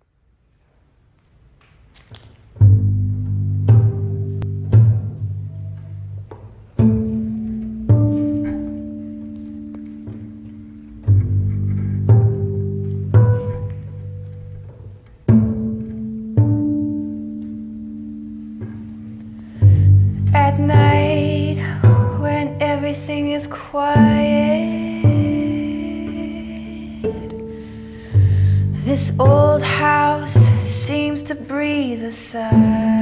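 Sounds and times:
plucked double bass: 2.5s - 33.0s
cello sustained tones: 2.6s - 33.0s.

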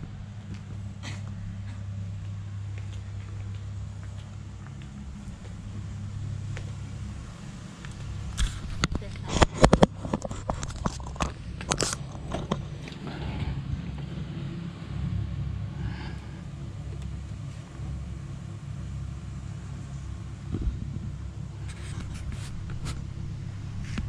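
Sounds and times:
low rumble: 0.0s - 24.0s.

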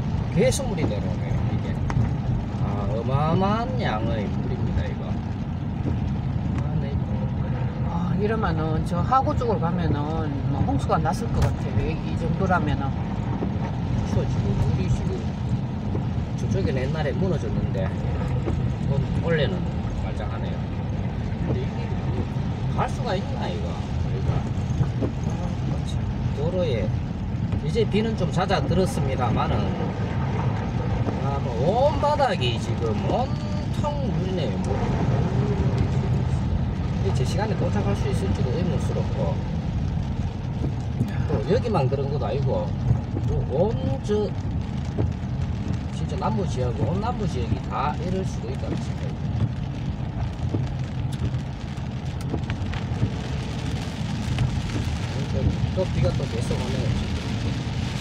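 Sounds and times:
car driving through floodwater: 0.0s - 58.0s
engine and tyres on wet road: 0.0s - 58.0s.

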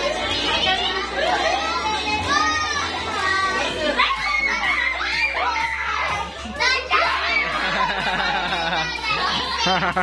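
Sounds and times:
crowd shouting and laughing: 0.0s - 10.0s
music playing: 0.0s - 10.0s.

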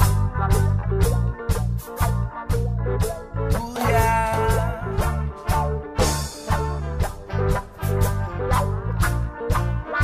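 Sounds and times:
guitar-led band music: 0.0s - 10.0s.

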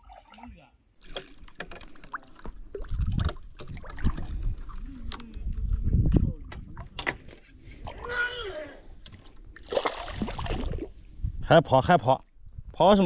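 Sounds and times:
fish splashing at surface: 9.6s - 10.9s.

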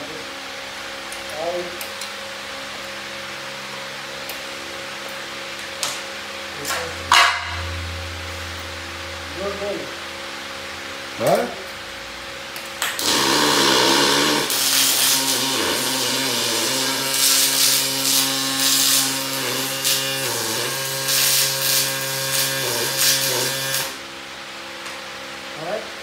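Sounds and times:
welding machine buzzing hum: 12.2s - 24.1s
electric arc welding hiss: 13.0s - 24.0s.

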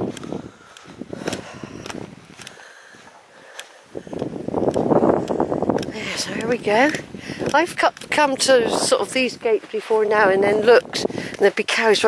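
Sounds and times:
light clicks: 0.1s - 2.8s, 3.4s - 8.1s
footsteps through grass: 8.0s - 12.0s.

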